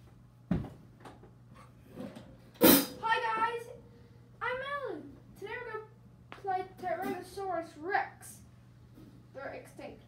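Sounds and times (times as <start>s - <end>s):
sharp hit: 2.6s - 3.0s
child speaking: 3.0s - 8.5s, 9.3s - 10.0s.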